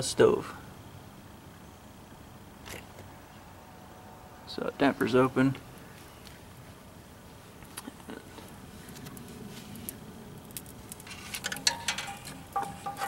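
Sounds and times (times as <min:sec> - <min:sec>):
fire crackling and ticking: 0:07.2 - 0:13.0
sharp clicks and rustling: 0:07.6 - 0:13.0.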